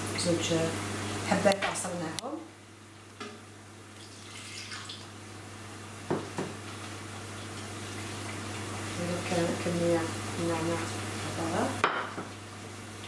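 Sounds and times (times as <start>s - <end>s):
juice pouring and dripping: 3.9s - 5.1s.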